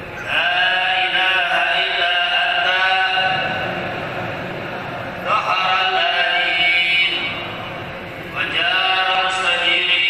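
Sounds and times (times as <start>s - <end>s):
person chanting melodic recitation: 0.2s - 3.6s, 5.2s - 7.5s, 8.3s - 10.0s.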